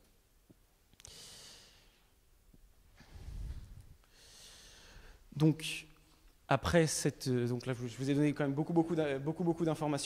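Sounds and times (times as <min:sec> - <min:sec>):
breath into microphone: 0:01.0 - 0:02.1, 0:03.0 - 0:05.3.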